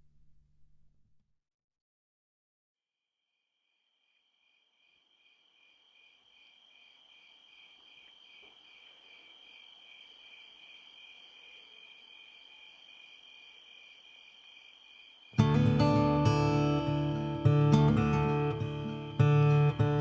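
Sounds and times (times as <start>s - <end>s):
crickets chirping: 3.6s - 20.0s.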